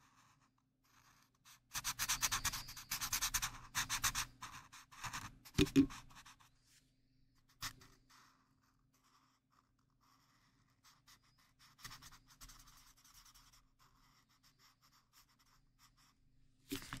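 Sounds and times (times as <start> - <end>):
marker scratching on paper: 0.0 - 6.5, 7.4 - 17.0.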